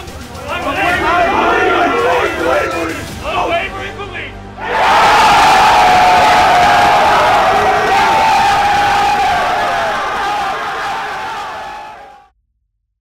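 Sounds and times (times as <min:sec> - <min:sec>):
players yelling and cheering: 0:00.0 - 0:12.3
loud held shout: 0:00.5 - 0:03.0, 0:04.6 - 0:12.3.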